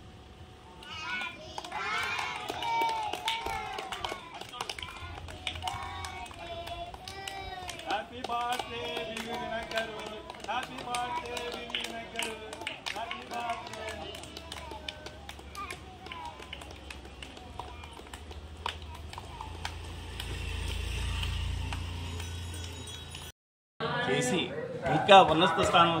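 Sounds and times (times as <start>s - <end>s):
crowd clapping: 0.8s - 23.0s.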